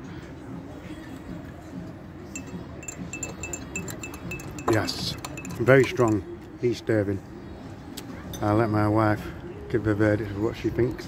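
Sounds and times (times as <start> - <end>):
spoon clinking against glass: 2.3 - 6.3.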